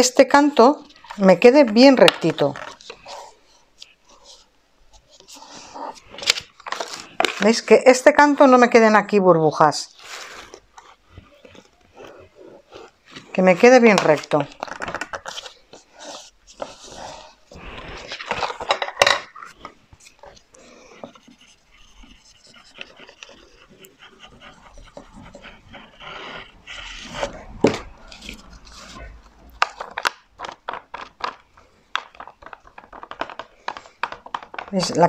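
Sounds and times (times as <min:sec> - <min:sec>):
paper rustling and rubbing: 0:00.8 - 0:07.7, 0:09.9 - 0:18.8, 0:19.4 - 0:35.0.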